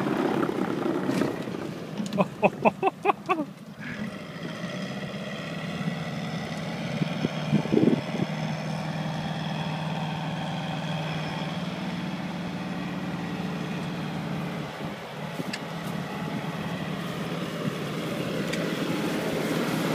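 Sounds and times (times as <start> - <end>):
tracked vehicle engine running: 0.0 - 19.9.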